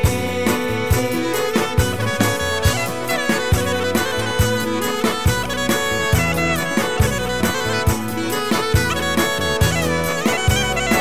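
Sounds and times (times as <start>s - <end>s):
reed wind instrument melody: 0.0s - 11.0s
steady beat: 0.0s - 11.0s.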